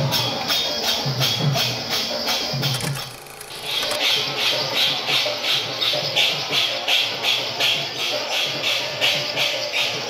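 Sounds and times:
jingling hand percussion: 0.0 - 10.0.

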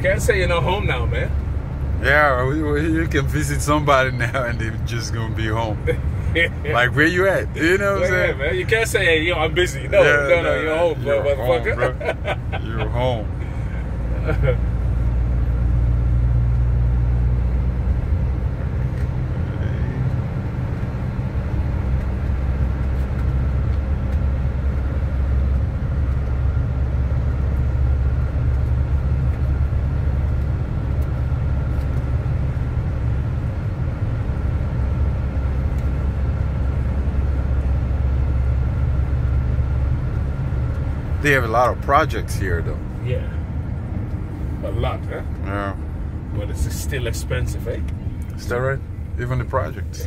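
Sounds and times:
car engine and road drone: 0.0 - 50.0.

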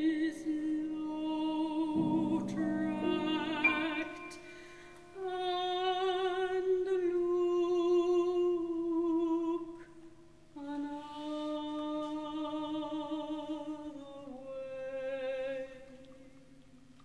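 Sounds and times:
soprano voice singing with vibrato: 0.0 - 10.0.

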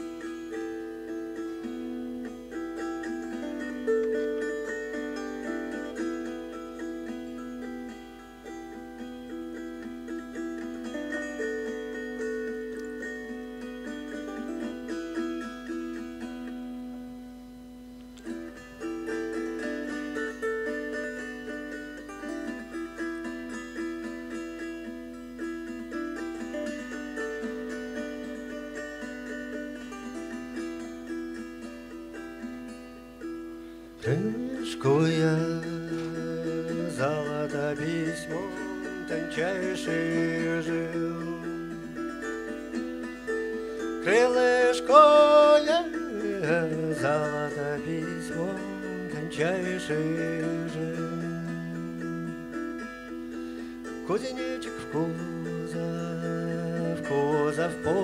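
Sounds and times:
plucked string melody: 0.0 - 58.0.

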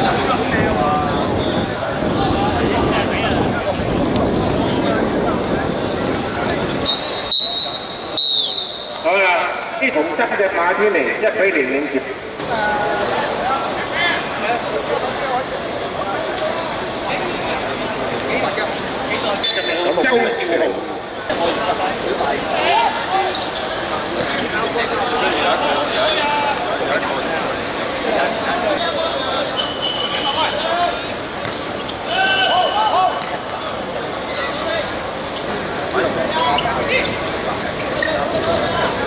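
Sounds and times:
men's voices and chatter: 0.0 - 39.0
referee's whistle blast: 6.8 - 9.1, 19.4 - 20.0, 29.4 - 30.4.

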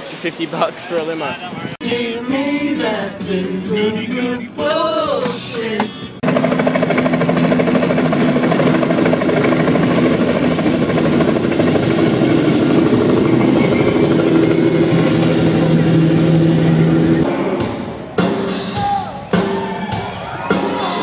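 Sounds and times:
helicopter rotor chop: 6.2 - 17.3
low hum: 7.1 - 17.3.

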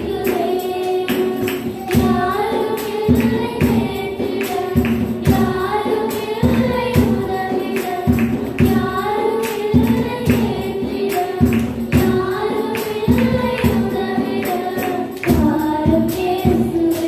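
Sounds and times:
girls singing into microphones: 0.0 - 17.0
musical accompaniment with steady beat: 0.0 - 17.0.

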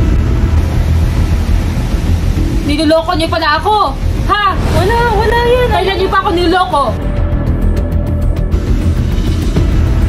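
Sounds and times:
loud low rumble: 0.0 - 10.0.

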